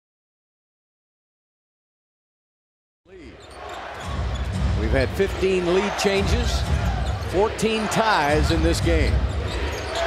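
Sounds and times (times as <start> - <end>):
arena crowd noise: 3.1 - 10.0.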